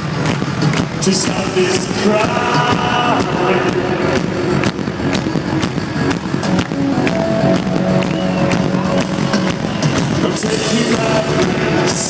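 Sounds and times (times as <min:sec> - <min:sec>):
live synth-rock band music: 0:00.0 - 0:12.0
steady drum beat: 0:00.0 - 0:12.0.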